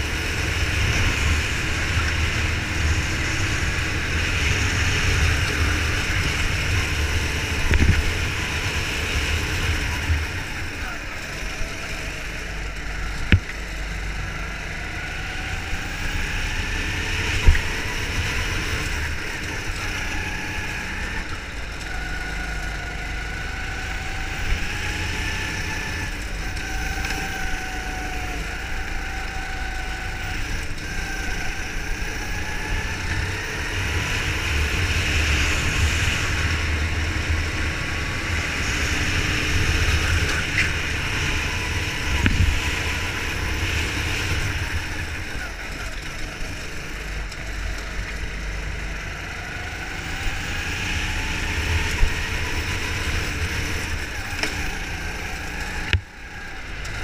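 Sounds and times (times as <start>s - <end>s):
wind rumble on microphone: 0.0s - 10.8s, 32.1s - 45.7s
go-kart engine: 0.0s - 57.0s.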